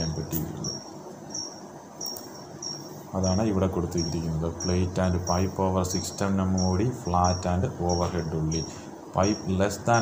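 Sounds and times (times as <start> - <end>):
high-pitched chirp: 0.0 - 10.0.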